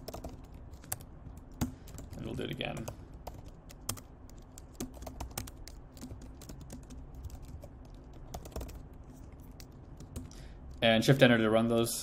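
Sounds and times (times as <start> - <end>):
computer keyboard typing: 0.0 - 10.8.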